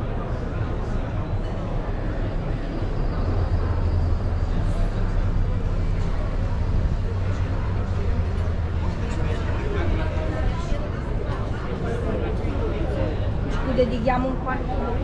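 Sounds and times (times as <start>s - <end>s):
voices chattering: 0.0s - 15.0s.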